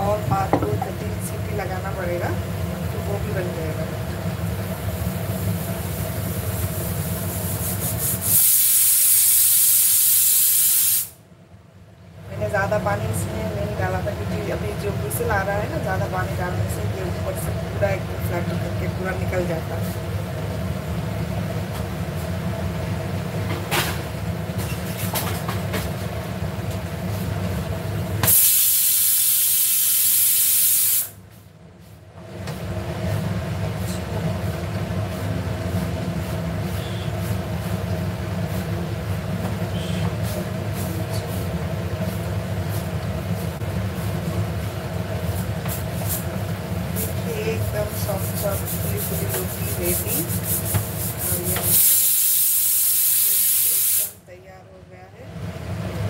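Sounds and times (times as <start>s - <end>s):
pressure cooker steam hiss: 5.0s - 11.2s, 28.2s - 31.2s, 47.8s - 54.2s.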